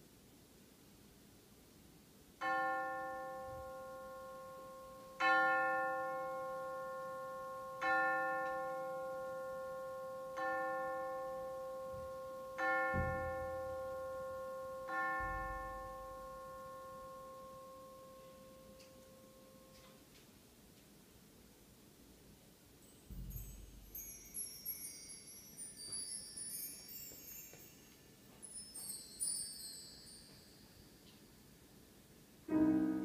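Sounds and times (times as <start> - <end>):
bell-like chime: 2.4 - 19.8, 22.8 - 31.8.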